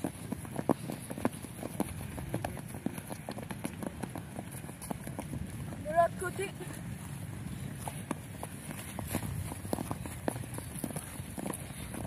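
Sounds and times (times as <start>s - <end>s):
running footsteps on grass: 0.0s - 12.0s
steady low rumble: 0.0s - 12.0s.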